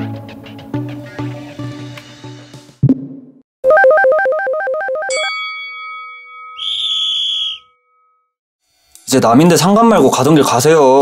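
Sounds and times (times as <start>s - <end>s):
chime ringing: 5.1s - 8.2s
high whistle-like tone: 6.5s - 8.2s.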